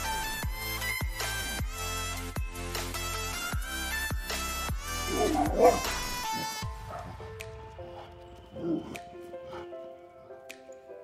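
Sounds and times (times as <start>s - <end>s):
background music: 0.0s - 11.0s
dog barking: 5.1s - 7.2s.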